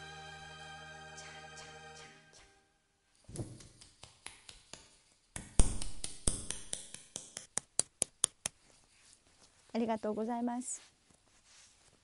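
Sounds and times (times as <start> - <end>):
hand claps: 3.4 - 8.6.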